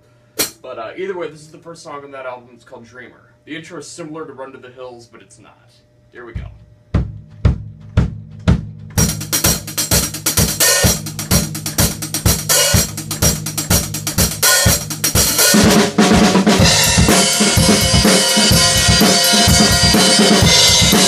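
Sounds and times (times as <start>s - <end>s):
rock drum kit playing: 0.4s - 0.6s, 6.3s - 21.0s.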